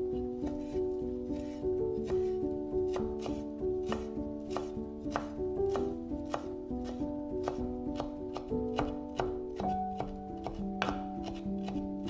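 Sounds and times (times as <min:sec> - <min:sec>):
soft background music: 0:00.0 - 0:12.0
knife chopping on wooden board: 0:01.4 - 0:11.9.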